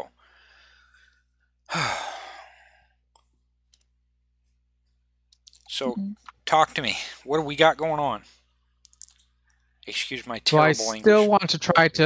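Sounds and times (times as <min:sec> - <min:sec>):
person sighing: 0:01.7 - 0:02.5.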